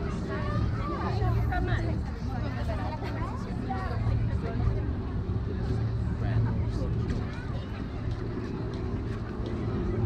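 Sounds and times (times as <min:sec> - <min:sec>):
faint chatter of passers-by: 0:00.0 - 0:10.0
low rumble: 0:00.0 - 0:10.0.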